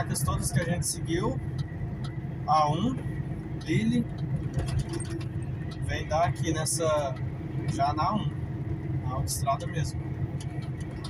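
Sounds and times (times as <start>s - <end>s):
truck engine and tyres rumbling: 0.0s - 11.0s
light ticks: 0.2s - 2.2s, 3.6s - 8.1s, 9.3s - 11.0s.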